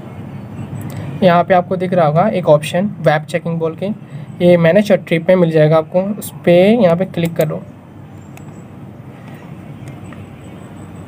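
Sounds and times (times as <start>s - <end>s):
steady low background noise: 0.0s - 11.0s
person talking: 1.2s - 7.8s.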